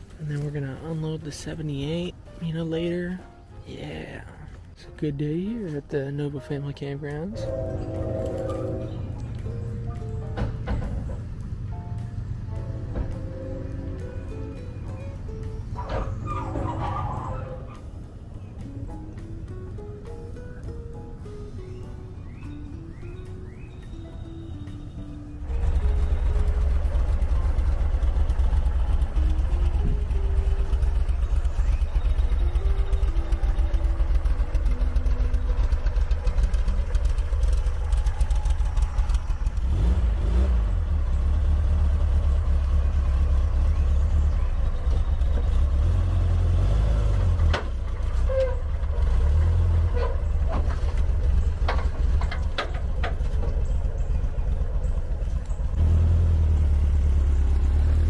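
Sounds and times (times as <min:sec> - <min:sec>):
car engine low rumble: 0:00.0 - 0:58.0.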